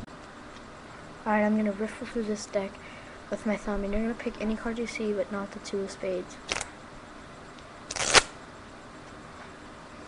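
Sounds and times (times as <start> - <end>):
playing cards riffled: 6.5 - 6.7, 7.9 - 8.4.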